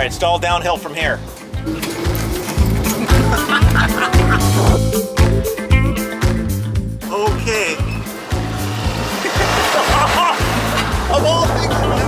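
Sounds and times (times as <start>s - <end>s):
music with repeating bass beat: 1.6s - 12.0s
person laughing or speaking: 3.2s - 4.8s, 9.2s - 11.8s.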